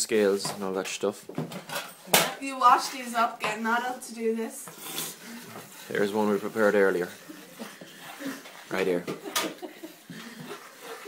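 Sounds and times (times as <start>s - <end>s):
soft laughter: 7.2s - 11.0s.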